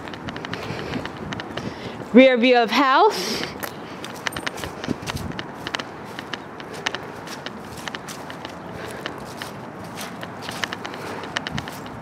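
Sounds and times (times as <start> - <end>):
footsteps on grass: 3.6 - 12.0.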